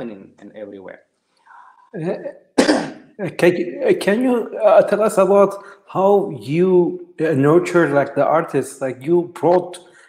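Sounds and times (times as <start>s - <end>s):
person coughing: 2.6s - 3.8s.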